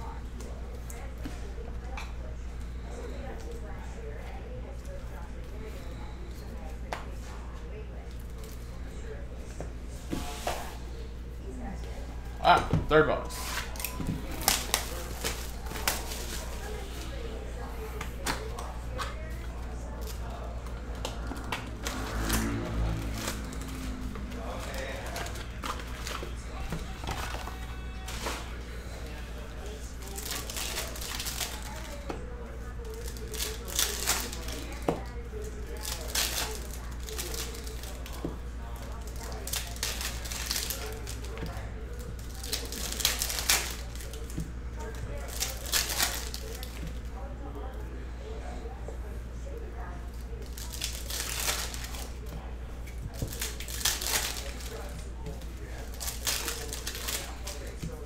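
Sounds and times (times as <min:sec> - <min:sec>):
foil wrappers crinkling and tearing: 0:13.3 - 0:17.2, 0:18.2 - 0:47.1, 0:50.1 - 0:58.0
cards being handled: 0:23.1 - 0:29.1.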